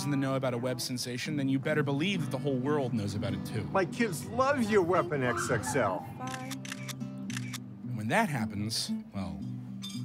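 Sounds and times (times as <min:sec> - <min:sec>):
camera shutter clicks: 0:06.2 - 0:07.6.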